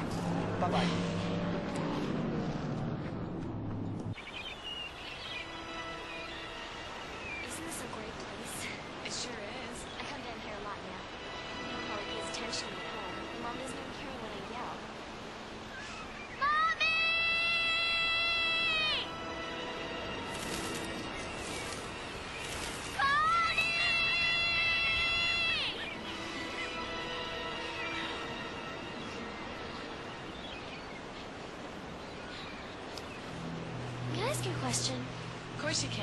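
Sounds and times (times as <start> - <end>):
birds chirping: 0.0 - 36.0
soft music: 3.4 - 36.0.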